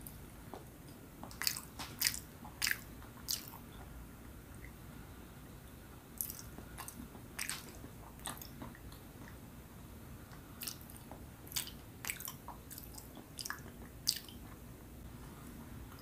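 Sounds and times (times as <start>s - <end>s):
person chewing: 1.2s - 3.8s, 6.2s - 9.4s, 10.6s - 14.6s.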